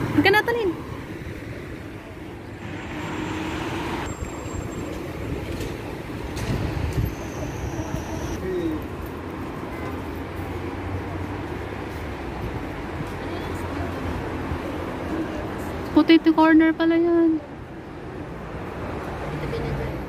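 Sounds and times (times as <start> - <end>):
cars driving past: 0.0 - 16.4.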